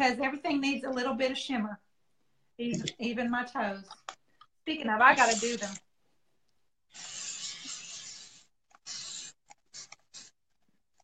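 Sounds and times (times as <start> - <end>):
spray bottle hissing and sputtering: 5.2 - 5.8, 6.9 - 10.4.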